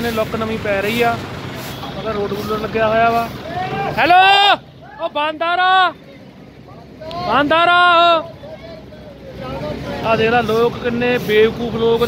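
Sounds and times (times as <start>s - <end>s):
man calling out: 3.5s - 6.0s, 7.1s - 8.4s.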